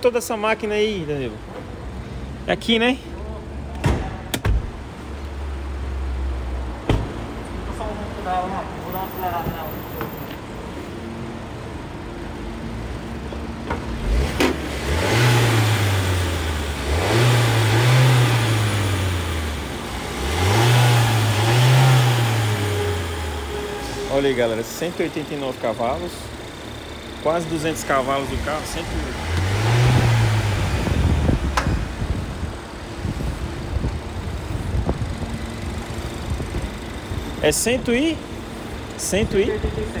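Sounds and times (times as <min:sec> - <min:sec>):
car engine revving: 0:13.8 - 0:33.2.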